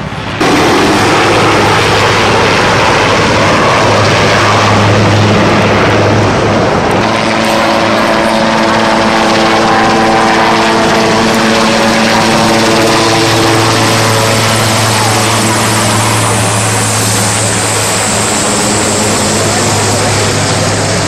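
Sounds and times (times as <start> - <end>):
helicopter flying low overhead: 0.0 - 21.0
steady multi-tone hum: 0.0 - 21.0.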